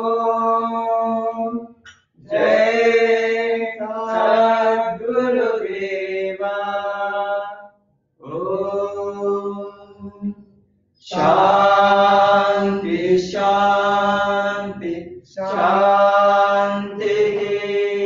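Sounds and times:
person chanting a mantra: 0:02.3 - 0:07.5, 0:08.2 - 0:10.4, 0:11.0 - 0:18.0.

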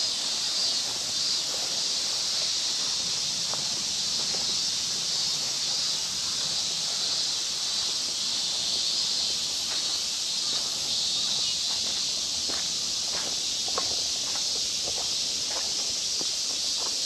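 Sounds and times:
footsteps on paved path: 0:00.0 - 0:17.0
high-pitched insect chorus: 0:00.0 - 0:17.0.

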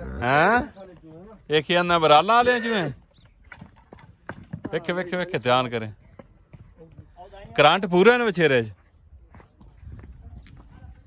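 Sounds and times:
hooves on brick paving: 0:00.0 - 0:11.0.

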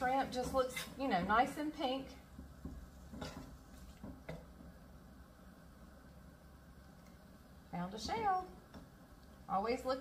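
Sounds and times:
spatula scraping frying pan: 0:00.0 - 0:01.6, 0:02.8 - 0:04.0
low steady hum: 0:00.0 - 0:10.0.

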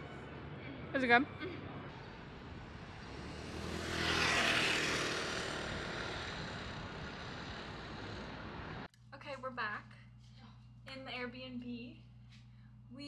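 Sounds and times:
vehicle passing: 0:00.0 - 0:08.9.

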